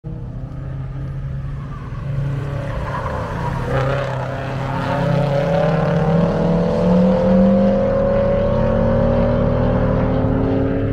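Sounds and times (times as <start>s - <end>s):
racing car engines accelerating: 0.1s - 10.9s.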